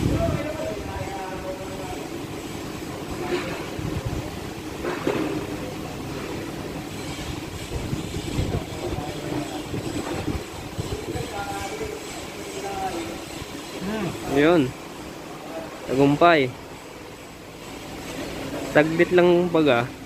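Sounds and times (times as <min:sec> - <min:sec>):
vehicle engine rumbling: 0:00.0 - 0:20.0.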